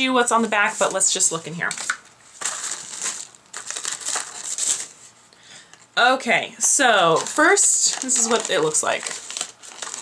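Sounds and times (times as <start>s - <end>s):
paper and cardboard rustling: 0.3s - 5.2s, 7.0s - 10.0s.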